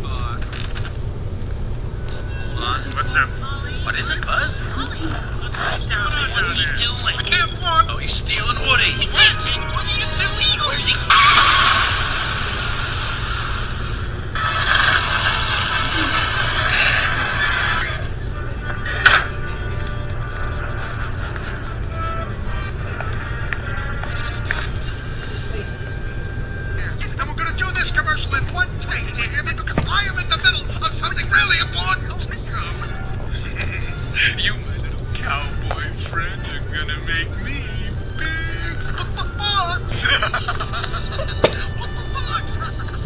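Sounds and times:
low hum: 0:00.0 - 0:43.0.

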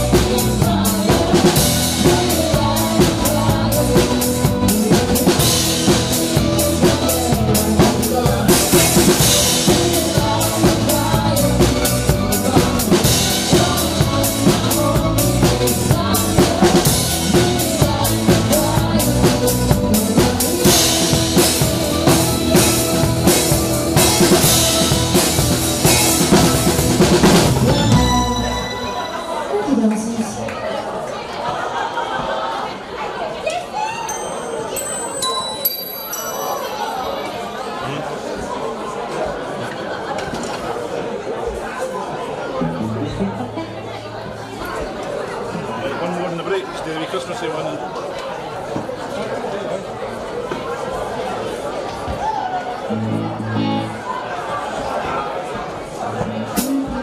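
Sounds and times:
live band playing dance music: 0:00.0 - 0:30.4, 0:52.9 - 0:54.2, 0:56.2 - 0:57.0
crowd chatter: 0:00.0 - 0:57.0.

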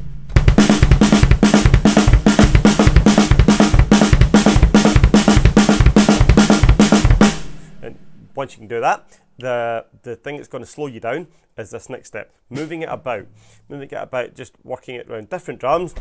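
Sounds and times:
snare drum strokes: 0:00.0 - 0:08.1, 0:12.6 - 0:13.0
kick drum strokes: 0:00.0 - 0:08.4.

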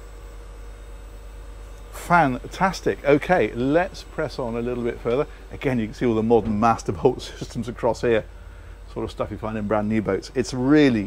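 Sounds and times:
machinery drone with hiss: 0:00.0 - 0:11.0.

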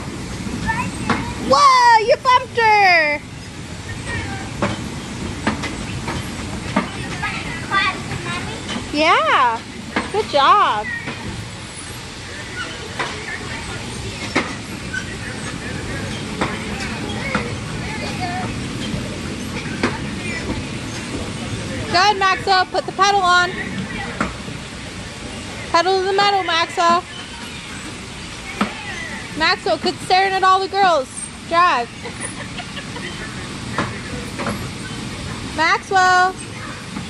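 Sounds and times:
bumper cars humming: 0:00.0 - 0:37.0
children calling out: 0:27.0 - 0:29.4.

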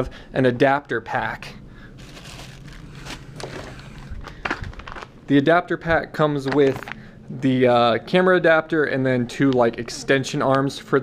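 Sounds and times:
plastic packaging rustling: 0:01.9 - 0:05.3.

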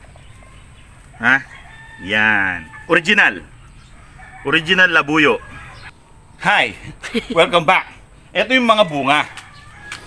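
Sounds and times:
rooster crowing: 0:01.2 - 0:05.9, 0:08.7 - 0:10.0.

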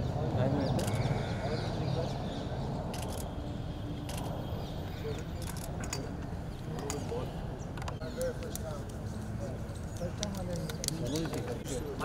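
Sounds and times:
camera shutter clicks: 0:02.9 - 0:03.3.

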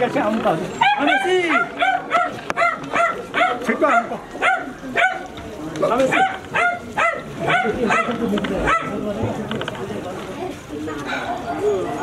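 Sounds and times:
dog barking: 0:00.8 - 0:05.3, 0:06.1 - 0:09.0.

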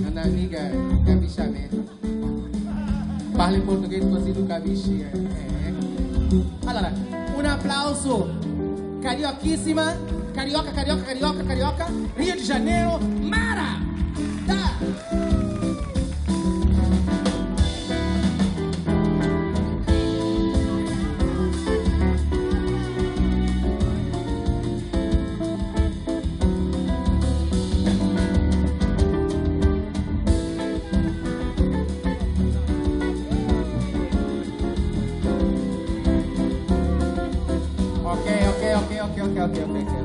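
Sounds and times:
guitar: 0:00.0 - 0:40.0
live band playing dance music: 0:00.0 - 0:40.0.

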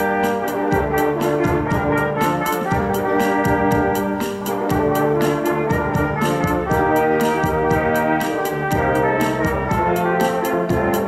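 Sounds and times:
brass ensemble playing chords: 0:00.0 - 0:11.0
drum kit beat: 0:00.0 - 0:11.0.

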